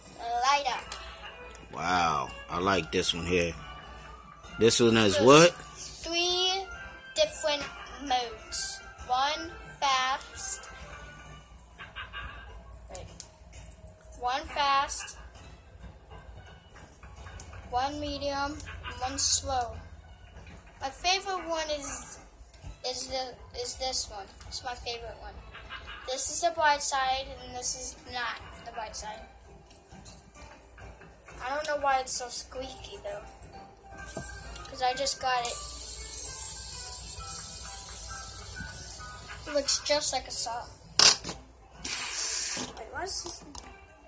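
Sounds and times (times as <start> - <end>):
child's voice: 0.1 - 1.0, 5.8 - 10.7, 14.2 - 15.2, 17.7 - 19.8, 20.8 - 22.2, 22.8 - 25.4, 26.1 - 29.2, 31.4 - 33.3, 34.6 - 35.7, 39.4 - 40.7, 42.6 - 43.6
fidget spinner bearing hissing: 34.2 - 40.1, 41.8 - 42.8.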